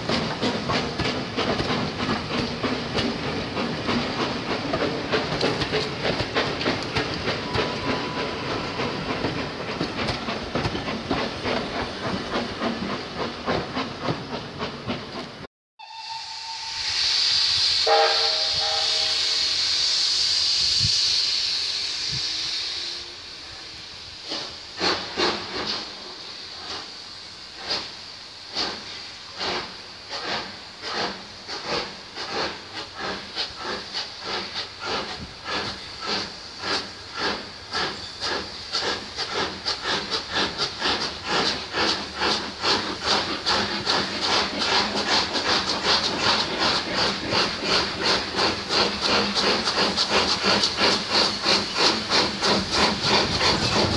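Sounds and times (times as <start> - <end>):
steam locomotive hissing: 0.0 - 53.9.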